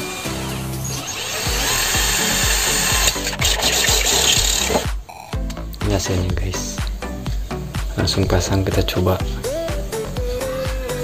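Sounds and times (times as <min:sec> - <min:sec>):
drill cutting through plastic pipe: 0:00.0 - 0:04.9
background music with steady beat: 0:00.0 - 0:11.0.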